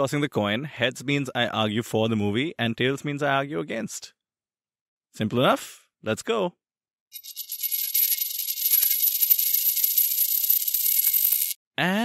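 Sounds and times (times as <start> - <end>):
spinning metal coin chatter: 7.2 - 11.6
thin ringing tone: 7.2 - 11.6.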